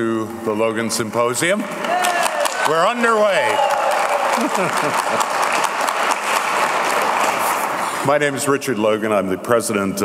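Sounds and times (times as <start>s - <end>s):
audience applauding: 1.8s - 8.0s.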